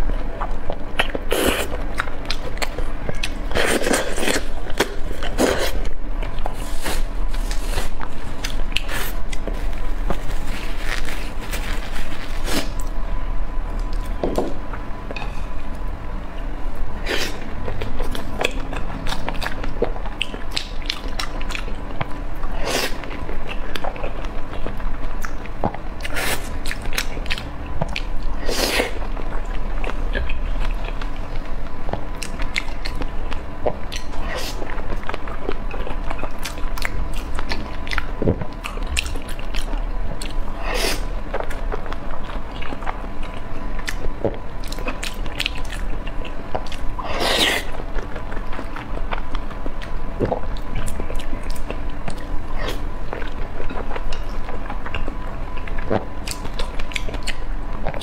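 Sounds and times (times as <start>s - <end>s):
close chewing and biting: 0.0s - 12.9s, 17.1s - 58.0s.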